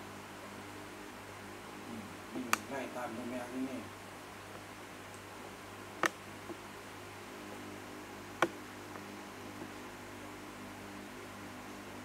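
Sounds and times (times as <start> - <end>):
faint hiss: 0.0 - 12.0
steady low hum: 0.0 - 12.0.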